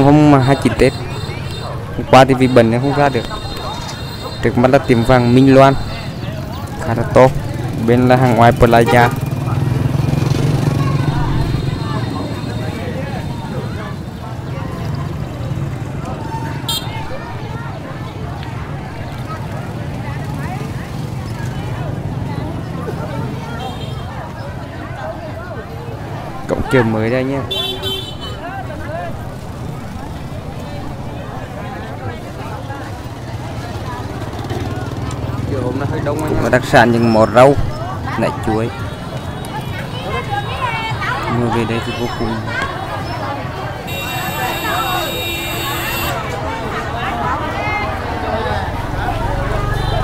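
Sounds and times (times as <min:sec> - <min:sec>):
crowd chattering faintly: 0:00.0 - 0:50.0.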